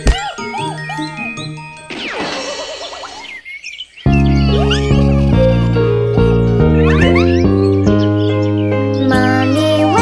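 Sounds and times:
bouncing tinkly notes: 0:00.0 - 0:02.4
soft background music: 0:04.1 - 0:10.0.

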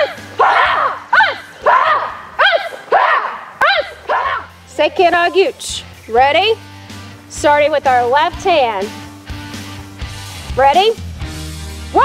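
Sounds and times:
group of students shouting: 0:00.0 - 0:04.5.

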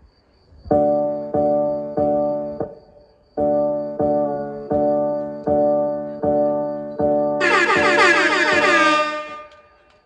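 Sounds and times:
backing music: 0:07.4 - 0:09.7
air horn blast sliding down: 0:07.4 - 0:09.9.

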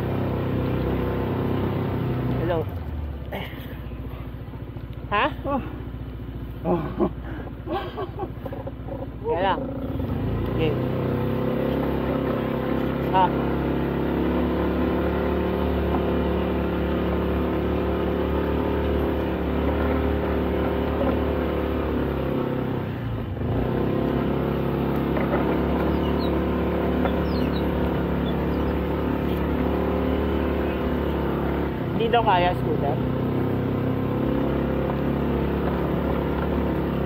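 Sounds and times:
scooter engine running: 0:00.0 - 0:37.0.

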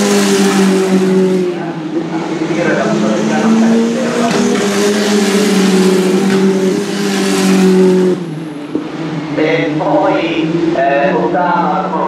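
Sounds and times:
race car engines at high revs: 0:00.0 - 0:12.0.

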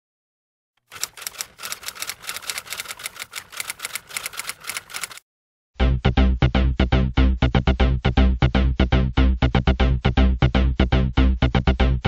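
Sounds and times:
fast run of sharp clicks: 0:00.8 - 0:05.2.

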